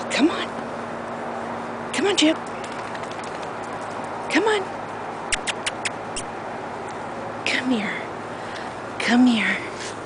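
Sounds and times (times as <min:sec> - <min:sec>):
lip kissing sounds: 0:05.3 - 0:06.3.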